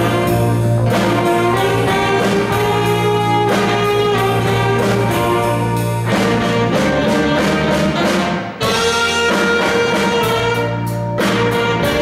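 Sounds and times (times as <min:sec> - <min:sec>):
bass guitar: 0:00.0 - 0:12.0
drum kit: 0:00.0 - 0:12.0
electric guitars: 0:00.0 - 0:12.0
keyboard: 0:00.0 - 0:12.0
saxophone: 0:00.0 - 0:12.0.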